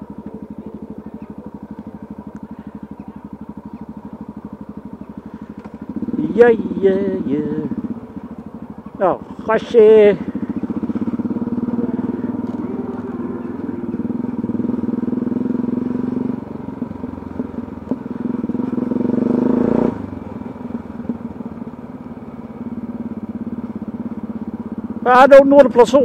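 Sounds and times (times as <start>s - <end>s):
city traffic: 0.0s - 26.0s
motorcycle engine running: 0.0s - 26.0s.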